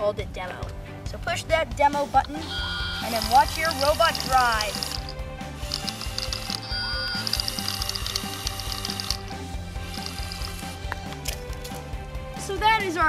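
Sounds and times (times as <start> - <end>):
background music: 0.0 - 13.0
robot motors whirring: 2.9 - 10.7.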